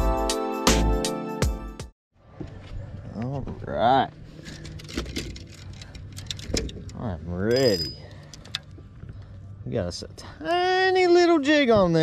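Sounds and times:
steady low hum: 2.2s - 12.0s
fishing tackle clicks and knocks: 4.6s - 8.9s.

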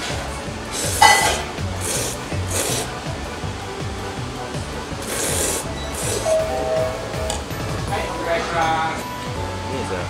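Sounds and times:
background music with beat: 0.0s - 10.0s
person slurping noodles: 0.7s - 3.0s, 5.0s - 6.4s.

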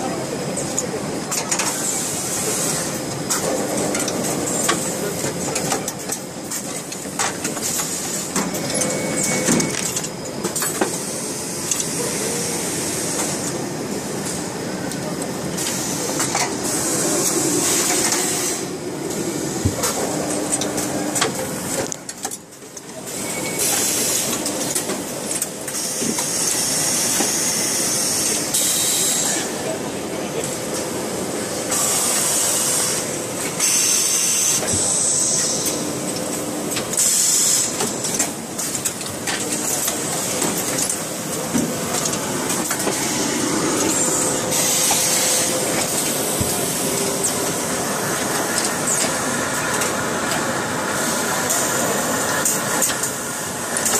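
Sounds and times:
machinery running: 0.1s - 22.2s, 34.6s - 53.9s.

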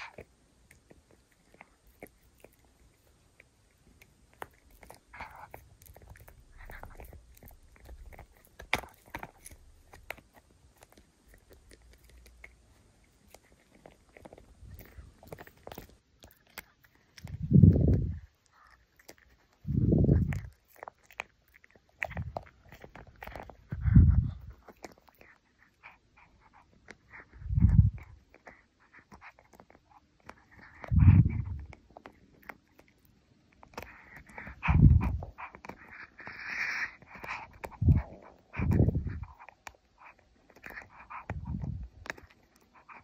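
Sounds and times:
puppy gnawing a chew: 0.0s - 43.0s.

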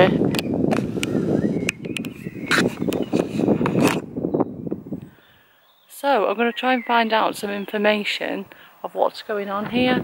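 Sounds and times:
wind buffeting microphone: 0.0s - 8.3s, 9.0s - 10.0s.

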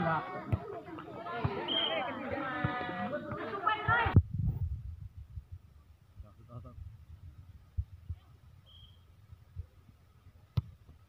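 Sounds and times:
people calling out: 0.0s - 4.2s.

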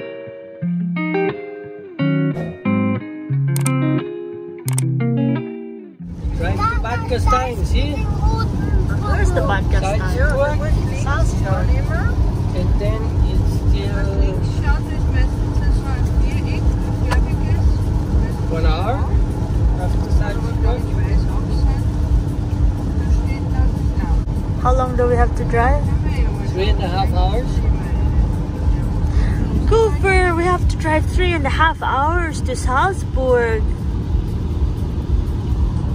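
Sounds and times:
constant hum: 6.0s - 35.9s
tyre and engine rumble: 6.0s - 35.9s.

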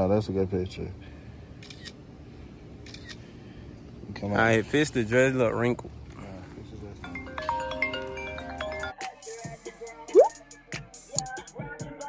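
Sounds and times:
faint outdoor background noise: 0.0s - 12.0s
camera shutter click: 2.9s - 3.2s.

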